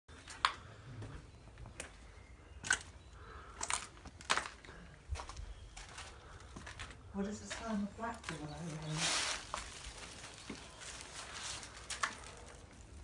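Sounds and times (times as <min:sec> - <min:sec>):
footsteps crunching over debris: 0:00.2 - 0:13.0.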